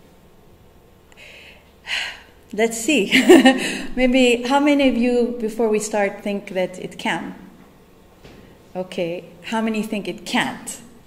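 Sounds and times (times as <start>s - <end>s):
woman breathing: 1.1s - 2.4s, 3.6s - 4.0s.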